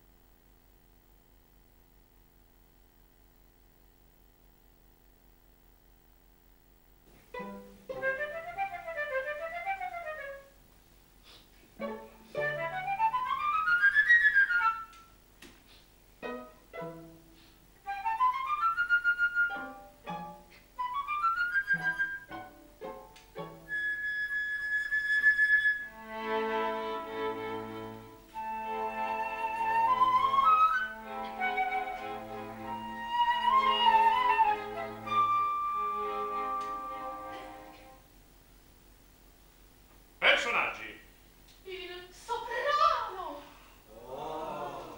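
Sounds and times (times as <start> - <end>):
small instrumental ensemble: 7.0 - 10.6, 11.2 - 38.1.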